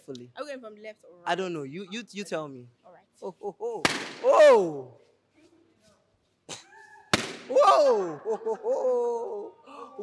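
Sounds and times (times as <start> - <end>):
short sharp pop: 3.8 - 4.3, 7.1 - 7.5
high vocal ooh: 7.5 - 10.0.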